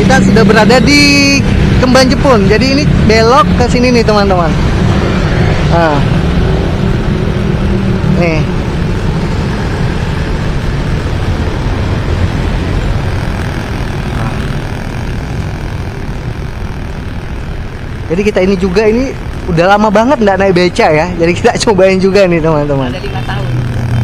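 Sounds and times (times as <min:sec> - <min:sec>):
low rumble: 0:00.0 - 0:22.8
motor vehicle engine running: 0:00.0 - 0:24.0
street traffic noise: 0:00.0 - 0:24.0.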